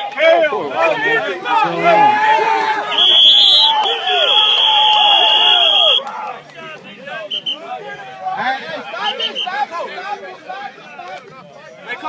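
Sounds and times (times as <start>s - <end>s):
players shouting: 0.0s - 12.0s
whistle blast: 2.9s - 6.0s, 7.3s - 7.7s, 9.0s - 9.6s.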